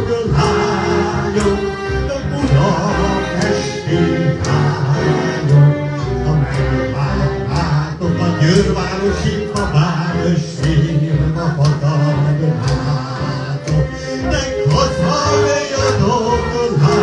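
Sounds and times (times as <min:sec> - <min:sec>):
man singing into a microphone: 0:00.0 - 0:17.0.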